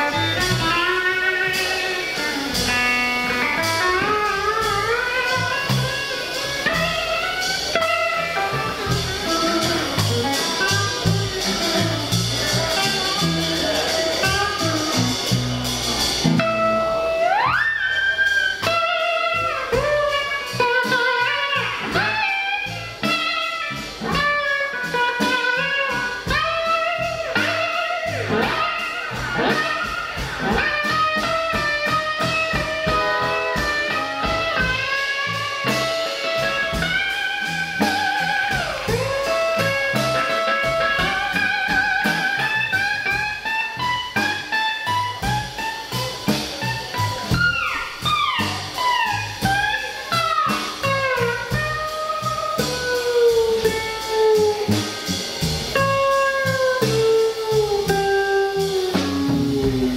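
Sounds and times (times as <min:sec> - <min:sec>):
drums and bass: 0:00.0 - 0:59.9
electric guitar solo: 0:00.0 - 0:59.9.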